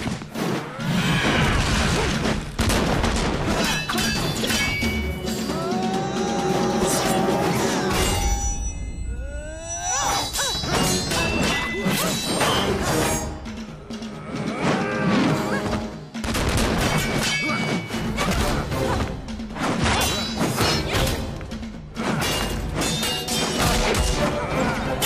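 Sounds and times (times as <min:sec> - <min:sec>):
orchestral score music: 0:04.7 - 0:09.2, 0:17.6 - 0:25.0.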